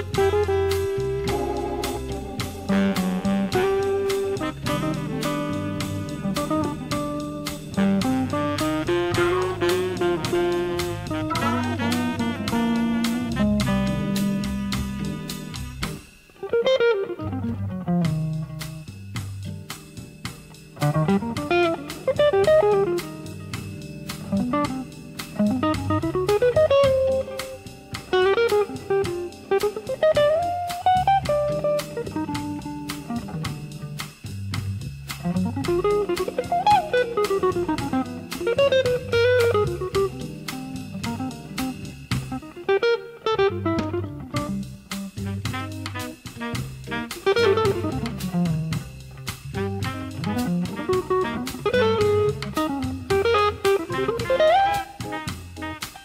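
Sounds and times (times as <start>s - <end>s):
electric guitar single-note melody: 0.0s - 15.6s, 16.4s - 18.6s, 20.8s - 33.8s, 35.3s - 44.6s, 49.9s - 56.0s
organ chords: 0.0s - 16.0s
drum kit: 0.0s - 56.0s.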